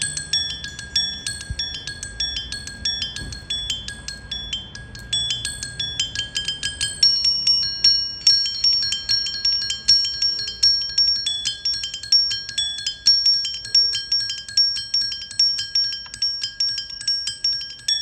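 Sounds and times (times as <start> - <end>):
mallet struck bell-like notes: 0.0 - 18.0.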